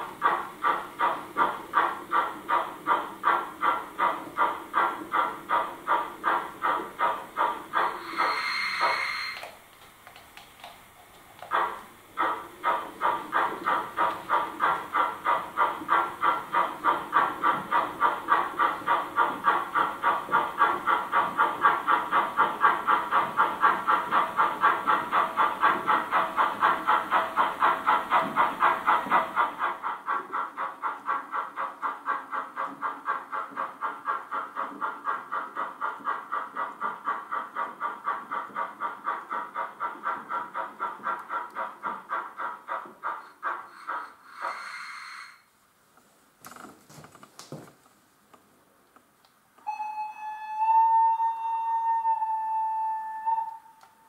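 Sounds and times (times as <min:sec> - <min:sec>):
model steam locomotive chuffing: 0:00.0 - 0:45.6.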